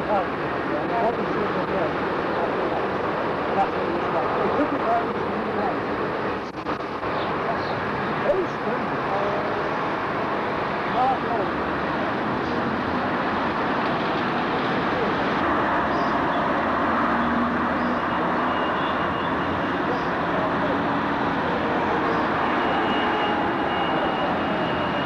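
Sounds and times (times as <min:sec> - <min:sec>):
road traffic rushing: 0:00.0 - 0:25.0.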